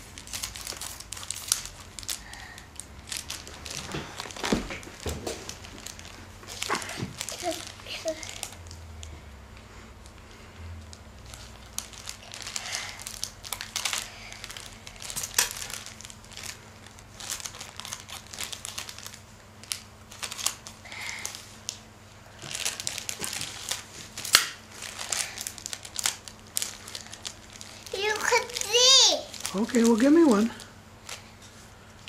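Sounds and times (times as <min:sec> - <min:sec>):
plastic bag crinkling: 0:00.0 - 0:09.1, 0:10.8 - 0:32.0.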